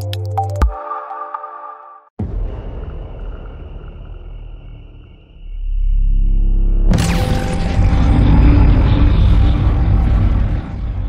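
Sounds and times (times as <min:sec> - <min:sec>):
deep rumbling drone: 0:02.2 - 0:11.0.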